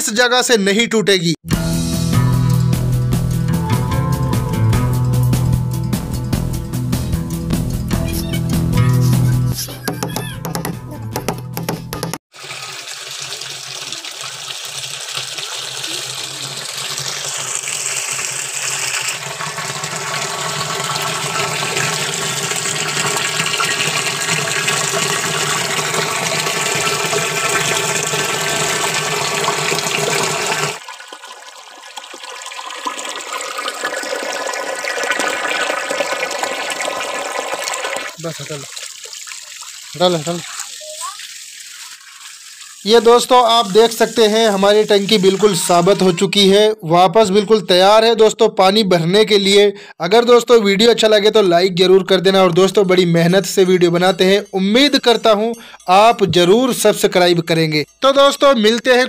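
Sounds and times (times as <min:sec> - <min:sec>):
water pouring into plastic tank: 0:10.0 - 0:46.4.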